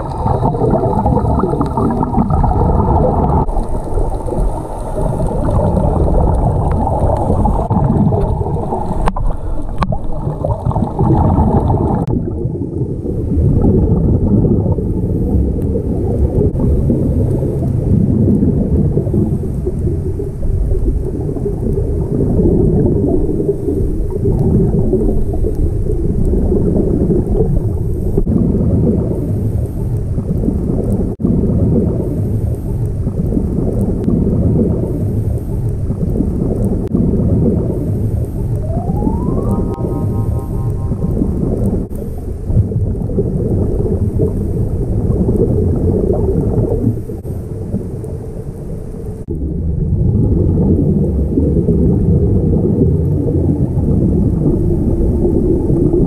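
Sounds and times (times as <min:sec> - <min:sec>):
muffled underwater rumble: 0:00.0 - 0:56.0
regulator bubbles: 0:00.0 - 0:56.0.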